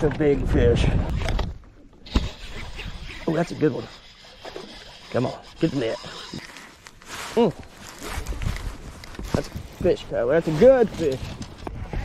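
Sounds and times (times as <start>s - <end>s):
wind rumble on microphone: 0.0s - 1.6s, 8.1s - 12.0s.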